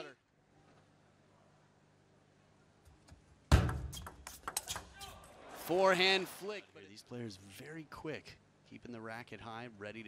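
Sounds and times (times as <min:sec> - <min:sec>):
ping pong ball clicking: 0:03.7 - 0:04.9.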